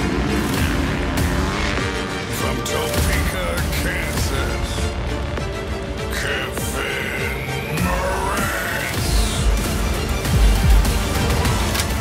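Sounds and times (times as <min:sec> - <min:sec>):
music with heavy beat: 0:00.0 - 0:12.0
deep bass hits: 0:09.0 - 0:12.0.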